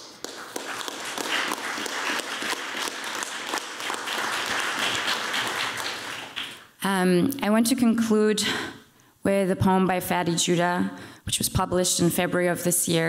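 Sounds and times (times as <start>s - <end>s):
audience applause: 0.0s - 6.6s.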